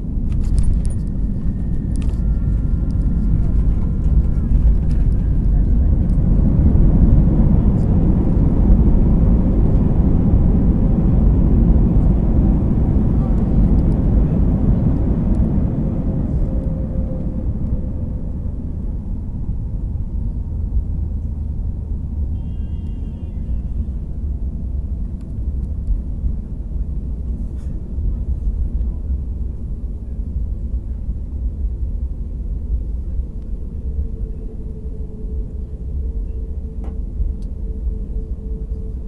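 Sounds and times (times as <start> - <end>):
jet cabin engine rumble: 0.0 - 39.0.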